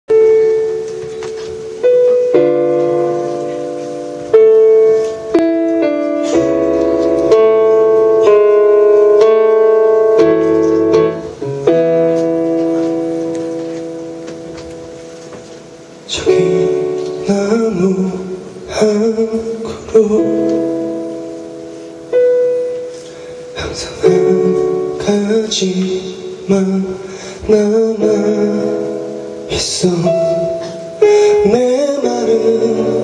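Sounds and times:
guitar: 0:00.1 - 0:33.0
piano keyboard chords: 0:00.1 - 0:33.0.

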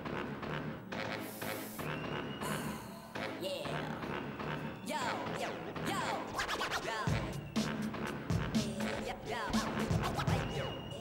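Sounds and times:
hip-hop drum break: 0:05.3 - 0:11.0.

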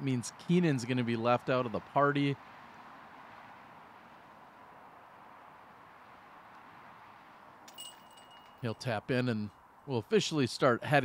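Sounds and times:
distant road traffic: 0:00.0 - 0:11.0
outdoor background hiss: 0:00.0 - 0:11.0
thin high tone: 0:07.7 - 0:09.0.

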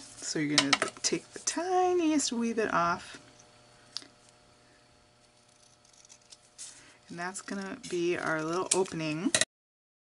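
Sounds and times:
low steady room hum: 0:00.0 - 0:09.5
small scissors snipping paper: 0:07.3 - 0:09.2.

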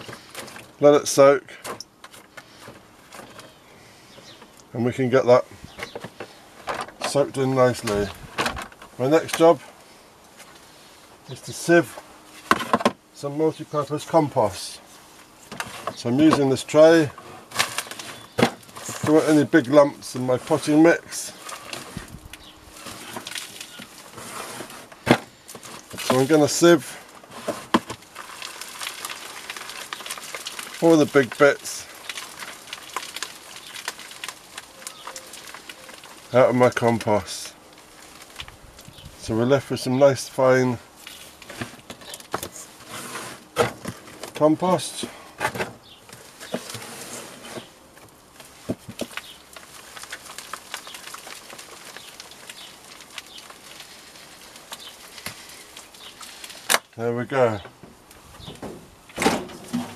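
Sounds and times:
soil pattering through mesh: 0:00.0 - 0:45.2, 0:45.8 - 0:58.3.

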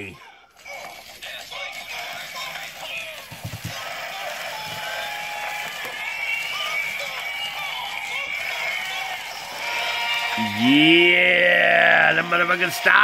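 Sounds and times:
tinny music with voices: 0:00.0 - 0:13.0.

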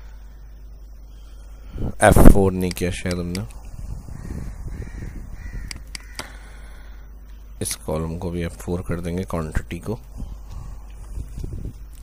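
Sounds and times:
faint bird calls: 0:00.0 - 0:01.8, 0:03.6 - 0:07.6
sharp clicks: 0:02.6 - 0:03.6, 0:05.6 - 0:06.4.

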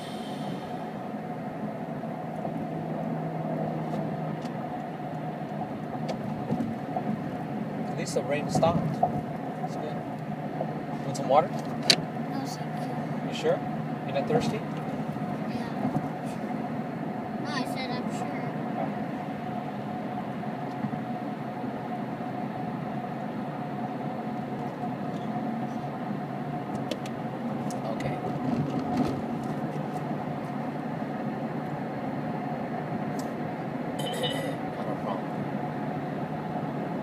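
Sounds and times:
car engine and road drone: 0:00.0 - 0:37.0.

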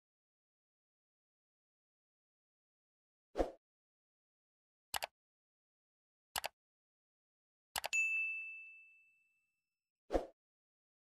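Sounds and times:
bell ding: 0:07.9 - 0:09.5.

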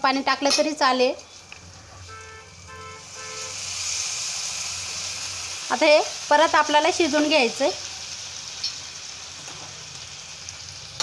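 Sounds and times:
water sizzling in hot pan: 0:00.8 - 0:11.0.

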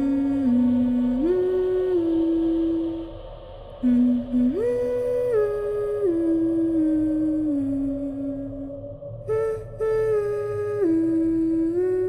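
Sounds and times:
person humming a slow tune: 0:00.0 - 0:12.0.

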